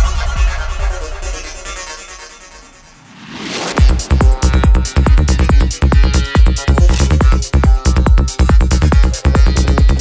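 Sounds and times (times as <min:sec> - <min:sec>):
psytrance music: 0:00.0 - 0:10.0
rolling bass line: 0:03.8 - 0:10.0.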